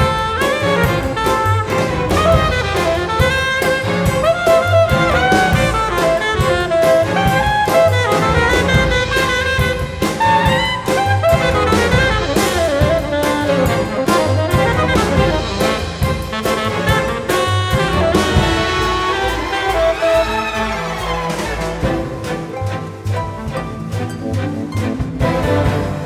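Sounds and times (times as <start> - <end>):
drum kit beat: 0.0 - 26.0
string orchestra: 0.0 - 26.0
tenor saxophone melody: 0.0 - 26.0.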